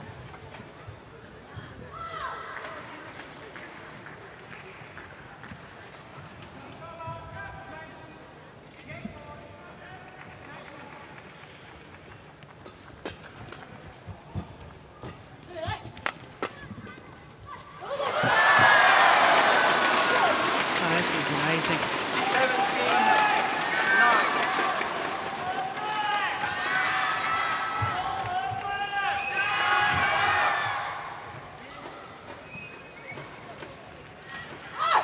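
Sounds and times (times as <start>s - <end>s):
crowd cheering and shouting: 17.8s - 31.3s
shoe squeaks on court: 31.8s - 33.5s.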